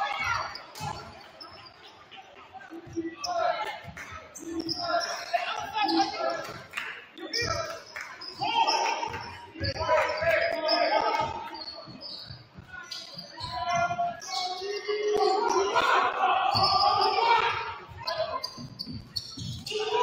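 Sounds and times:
sneaker squeaks: 0:00.0 - 0:20.0
players calling out: 0:02.6 - 0:20.0.

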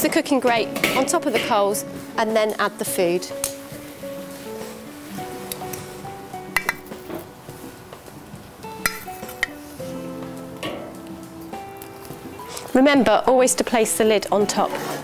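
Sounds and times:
background music with held notes: 0:00.0 - 0:15.0
metal tongs tapping grill grate: 0:06.6 - 0:07.0, 0:08.8 - 0:09.6.

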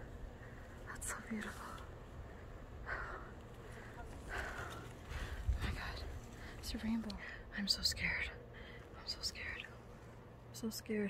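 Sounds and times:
woman whispering: 0:00.8 - 0:01.9, 0:05.5 - 0:09.8.

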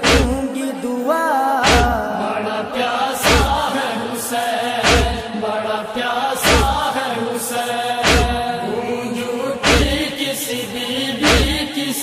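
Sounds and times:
person singing a lament chant: 0:00.0 - 0:12.0.

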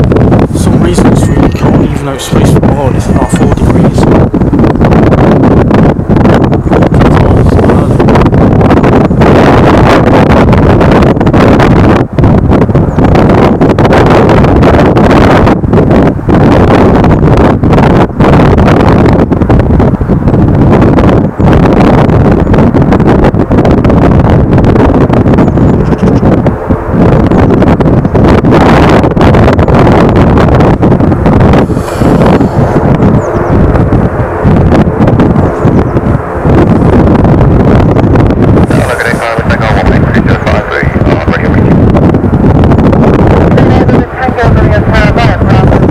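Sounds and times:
wind buffeting microphone: 0:00.0 - 0:45.9.

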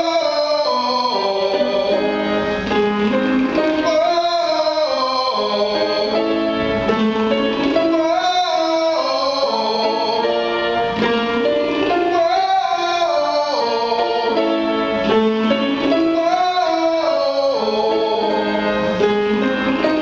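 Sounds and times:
piano accompaniment: 0:00.0 - 0:20.0.

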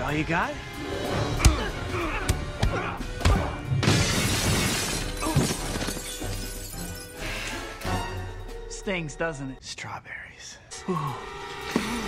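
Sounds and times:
background music: 0:00.0 - 0:12.0
glass window shattering: 0:03.8 - 0:07.2.

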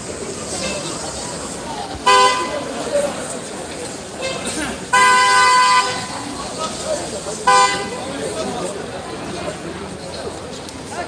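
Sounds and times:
car horn honking: 0:02.0 - 0:02.7, 0:04.2 - 0:06.2, 0:07.4 - 0:08.0.

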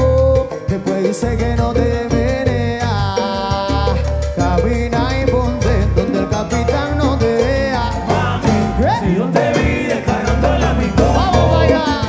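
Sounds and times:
live salsa band playing: 0:00.0 - 0:12.0
person singing: 0:00.0 - 0:12.0.

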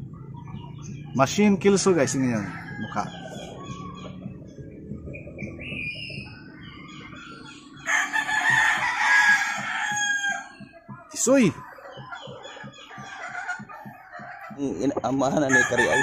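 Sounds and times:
rooster crowing: 0:01.8 - 0:03.7, 0:07.8 - 0:10.6, 0:15.4 - 0:16.0.

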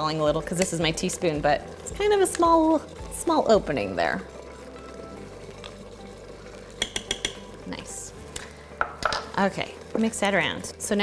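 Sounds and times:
teaspoon clicking on glass jar: 0:06.8 - 0:07.4.

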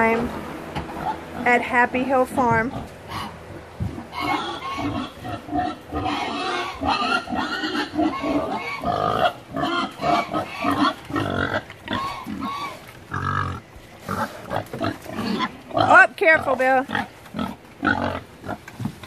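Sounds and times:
pigs grunting and squealing: 0:00.9 - 0:01.6, 0:02.7 - 0:18.7.

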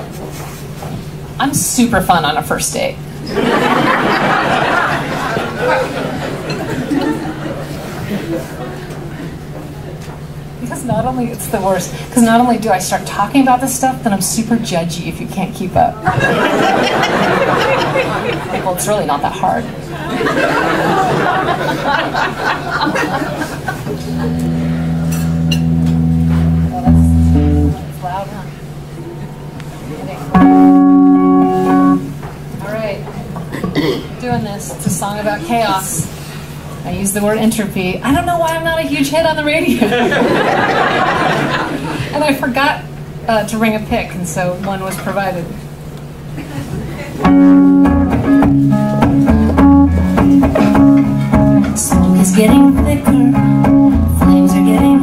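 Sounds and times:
electric guitar chords ringing: 0:23.8 - 0:28.0, 0:30.3 - 0:32.2, 0:47.2 - 0:55.0.

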